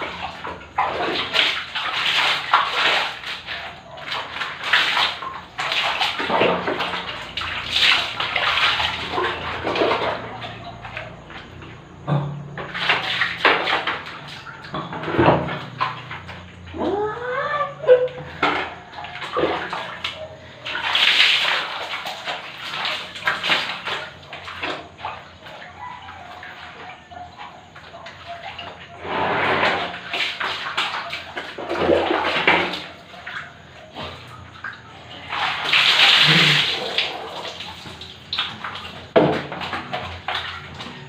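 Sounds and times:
water splashing on body and floor: 0.0 - 41.0.

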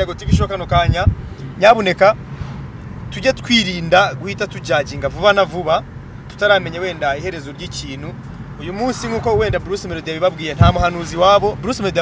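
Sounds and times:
man talking: 0.0 - 2.2, 3.1 - 12.0
car engine hum and road noise: 0.0 - 12.0.

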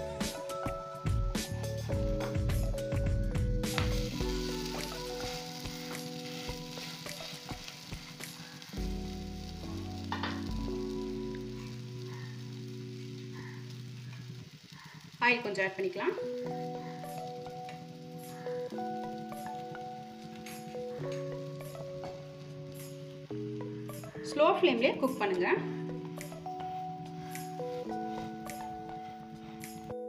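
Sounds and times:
oil sizzling in a pan: 0.0 - 30.0.

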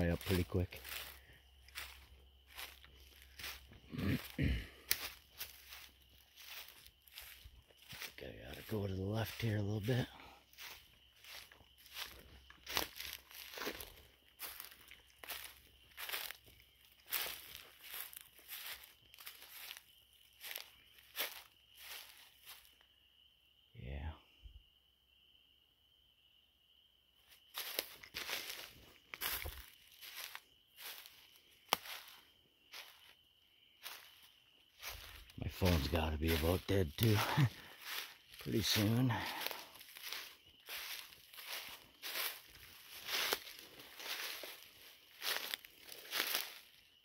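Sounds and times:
footsteps through leaf litter: 0.0 - 22.7, 27.4 - 33.2, 33.8 - 46.8.

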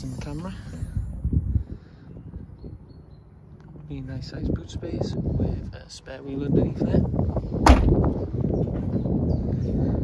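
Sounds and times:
car tailgate slamming shut: 7.6 - 8.1.

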